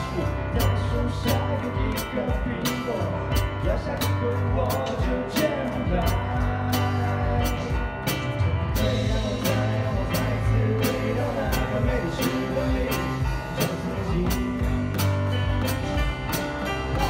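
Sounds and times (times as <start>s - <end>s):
drum kit beat: 0.0s - 17.0s
sustained keyboard chords: 0.0s - 17.0s.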